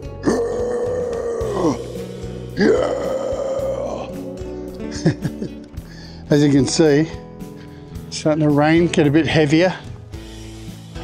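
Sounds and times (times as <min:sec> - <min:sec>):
person calling out oh: 0:00.2 - 0:05.2.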